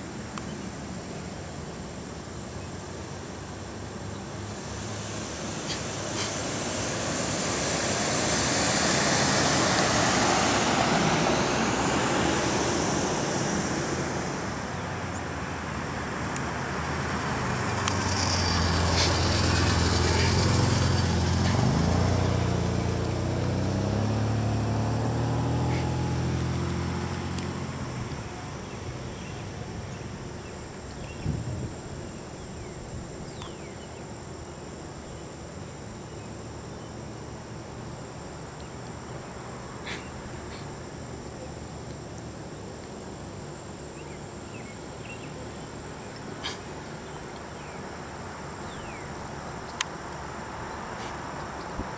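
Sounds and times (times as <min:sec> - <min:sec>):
insects chirring: 0:00.0 - 0:51.9
broad rushing noise: 0:00.8 - 0:30.5
vehicle engine hum passing: 0:01.0 - 0:51.9.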